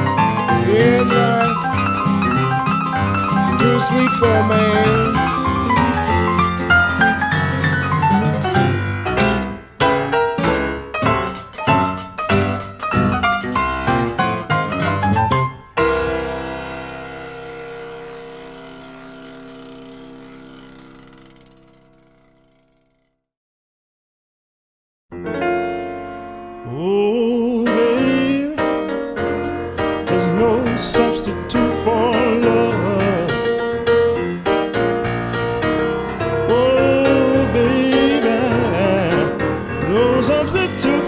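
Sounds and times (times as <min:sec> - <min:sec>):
piano and guitar blues chord: 0:00.0 - 0:20.7, 0:25.1 - 0:41.0
person singing slow blues: 0:00.5 - 0:02.2, 0:03.4 - 0:05.5, 0:26.6 - 0:28.6, 0:30.1 - 0:33.5, 0:36.4 - 0:41.0
high noisy shimmer: 0:15.8 - 0:22.0.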